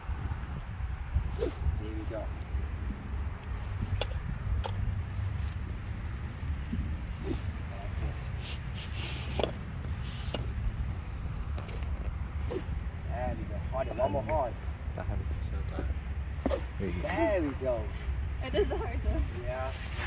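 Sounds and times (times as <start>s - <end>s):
wind rumble on microphone: 0.0s - 20.0s
stick swishing through air: 7.1s - 7.6s, 8.2s - 10.6s.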